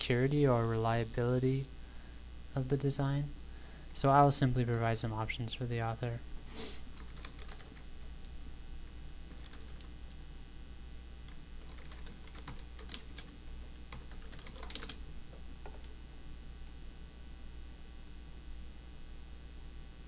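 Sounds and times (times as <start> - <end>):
steady low hum: 0.0 - 20.0
keyboard typing: 6.9 - 7.9, 8.9 - 10.2, 11.3 - 16.0.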